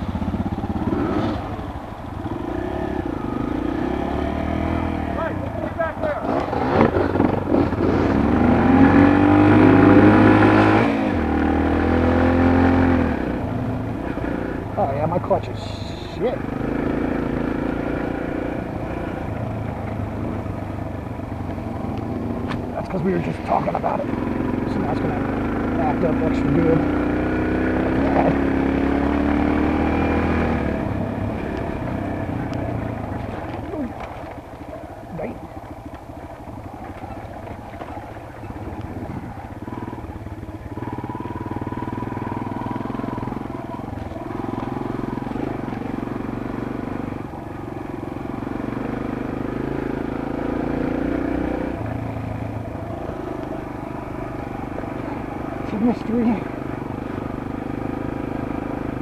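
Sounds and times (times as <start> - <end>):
motorbike engine revving: 0.0 - 59.0.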